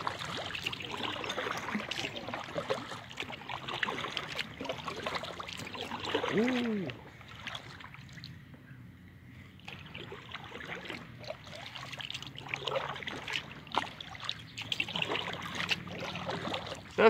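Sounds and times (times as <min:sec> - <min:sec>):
water dripping off paddle: 0:00.0 - 0:08.3, 0:09.6 - 0:16.9
kayak paddle splashing water: 0:00.0 - 0:08.4, 0:09.6 - 0:17.0.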